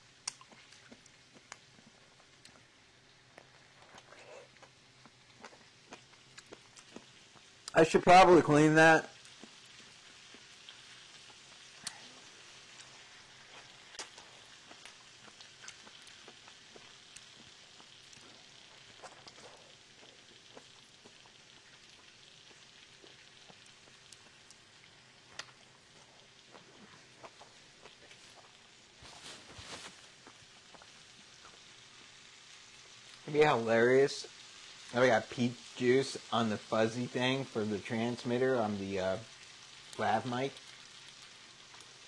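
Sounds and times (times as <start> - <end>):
low steady hiss: 0.0 - 42.0
person chewing juicy fruit: 0.1 - 7.8, 9.2 - 33.2, 40.6 - 42.0
sharp mouth clicks: 0.2 - 0.6.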